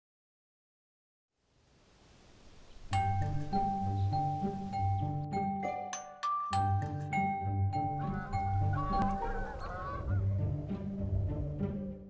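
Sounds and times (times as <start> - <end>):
background music: 2.9 - 12.0
geese honking: 7.7 - 11.8.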